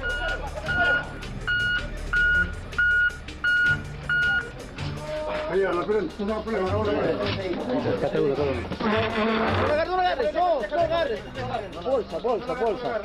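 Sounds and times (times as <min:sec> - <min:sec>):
reversing alarm beeps: 0:00.0 - 0:04.5.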